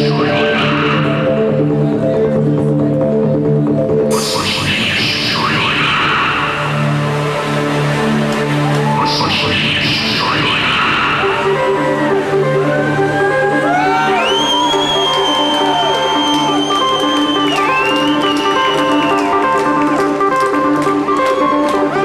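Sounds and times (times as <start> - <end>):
synthesizer music: 0.0 - 22.0.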